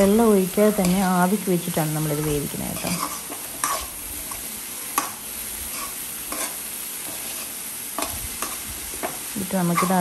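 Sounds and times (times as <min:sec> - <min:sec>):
vegetables sizzling: 0:00.0 - 0:10.0
metal fork scraping pan: 0:02.2 - 0:05.1, 0:05.7 - 0:08.6, 0:09.7 - 0:10.0.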